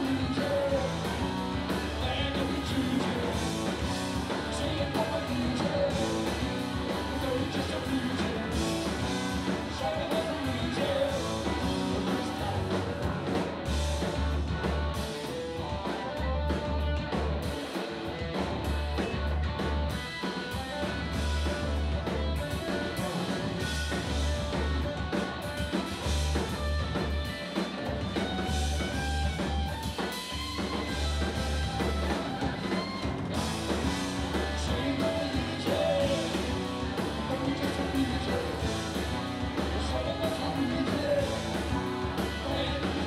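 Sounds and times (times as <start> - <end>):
busy drumming: 0.0 - 43.0
electric bass line: 0.0 - 43.0
electric guitar: 0.0 - 43.0.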